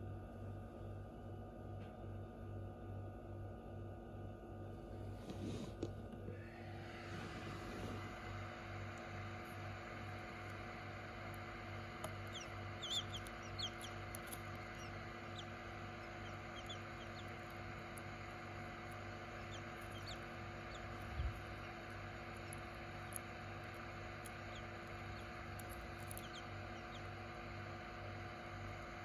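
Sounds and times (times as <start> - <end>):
incubator hum: 0.0 - 29.0
quail chick peeping: 6.9 - 29.0.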